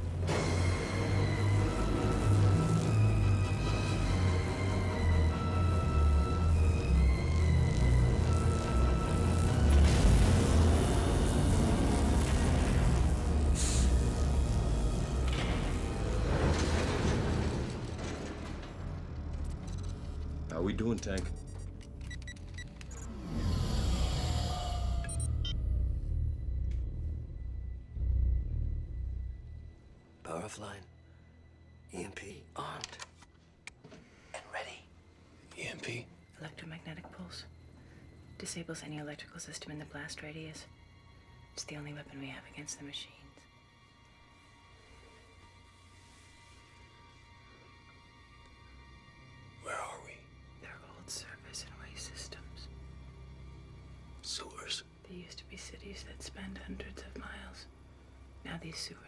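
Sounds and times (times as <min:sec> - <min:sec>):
dark tense film score: 0:00.0 - 0:59.0
deep throbbing rumble: 0:05.2 - 0:20.8, 0:23.6 - 0:30.1
person whispering: 0:34.4 - 0:34.9, 0:49.6 - 0:52.6.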